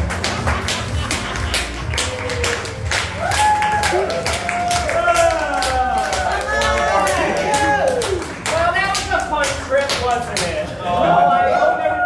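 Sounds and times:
scattered hand claps: 0.0 - 10.8.

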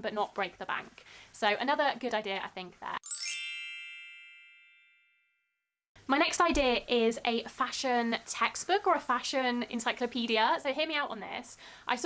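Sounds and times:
bright bell-like chime: 3.0 - 5.6.

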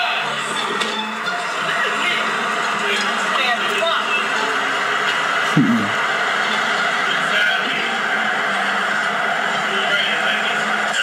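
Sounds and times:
indistinct voices: 5.5 - 6.0
short falling cry: 5.6 - 6.0.

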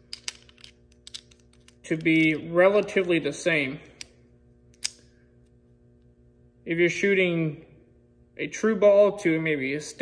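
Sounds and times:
metal release aids clicking: 0.1 - 2.3, 3.9 - 5.1.

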